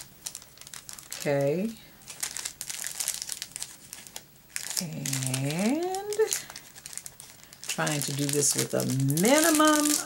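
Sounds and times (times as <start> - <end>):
cellophane bag crinkling: 0.0 - 10.0.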